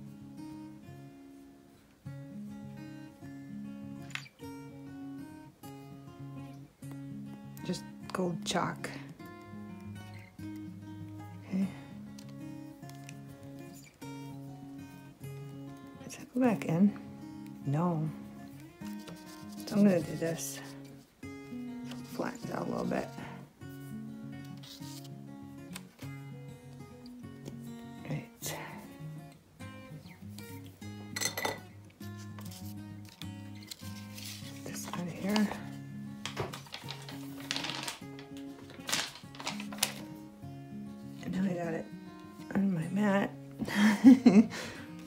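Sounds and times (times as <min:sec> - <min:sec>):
light instrumental music: 0:00.0 - 0:45.0
paper rustling and marker taps: 0:18.8 - 0:20.7, 0:32.2 - 0:40.1.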